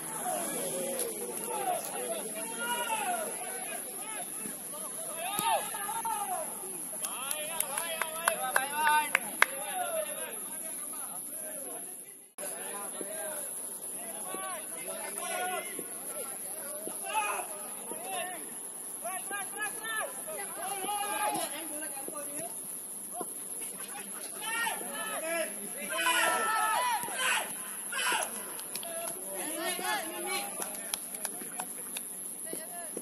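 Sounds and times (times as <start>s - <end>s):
footballers shouting: 0.0s - 11.8s, 12.5s - 22.4s, 23.1s - 33.0s.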